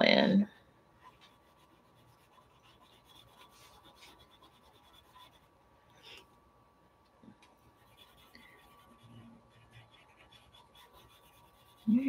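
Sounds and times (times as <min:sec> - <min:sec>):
cotton swab rubbing on paper: 0:01.1 - 0:05.5, 0:07.8 - 0:12.0.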